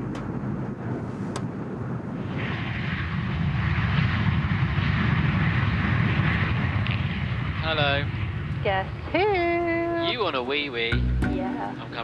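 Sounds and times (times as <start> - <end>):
jet engines in flight: 0.0 - 10.9.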